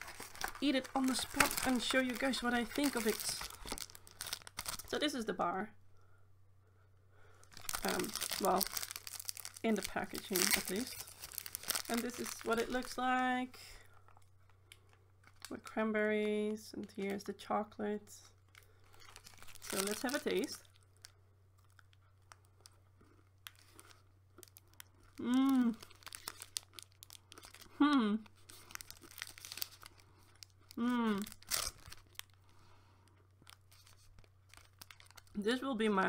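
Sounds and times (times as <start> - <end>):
plastic wrapper crinkling: 0.0 - 5.3, 7.4 - 17.5, 18.2 - 35.4
low steady hum: 0.0 - 36.0.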